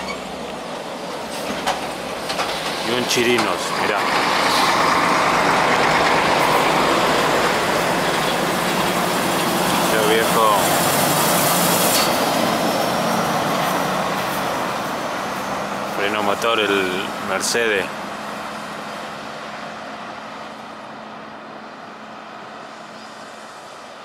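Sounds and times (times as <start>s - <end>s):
truck diesel engine passing: 0.0s - 24.0s.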